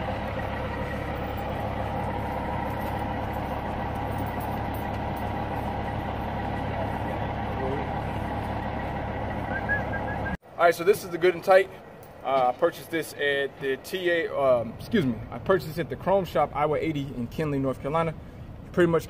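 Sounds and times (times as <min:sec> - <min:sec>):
diesel truck engine idling: 0:00.0 - 0:19.0.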